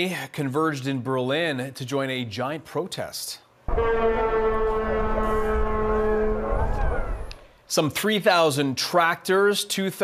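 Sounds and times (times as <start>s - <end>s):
vehicle horn blast: 3.7s - 7.1s
low rumble: 3.7s - 7.5s.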